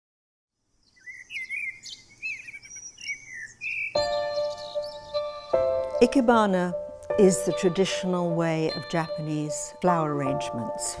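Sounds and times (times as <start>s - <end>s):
birds chirping and whistling: 0.8s - 6.2s.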